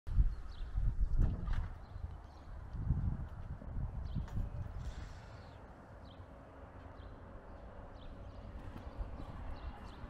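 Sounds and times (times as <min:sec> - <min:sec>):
footsteps on paved road: 0:01.5 - 0:10.0.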